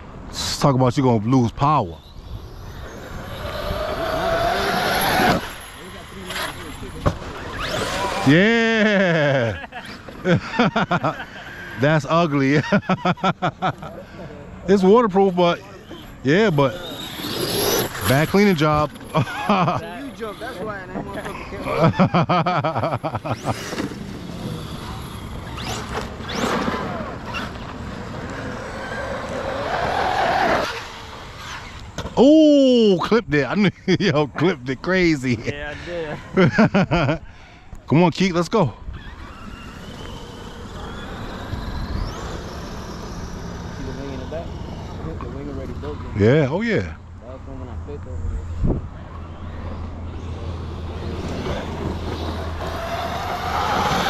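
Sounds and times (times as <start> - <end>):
electric rc truck motor whine: 2.0 - 9.1, 9.7 - 13.8, 15.1 - 32.2, 37.6 - 46.4, 48.1 - 54.0.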